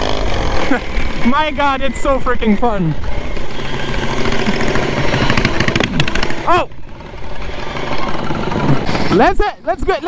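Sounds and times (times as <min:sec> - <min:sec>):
ride-on lawn mower engine running: 0:00.0 - 0:10.0.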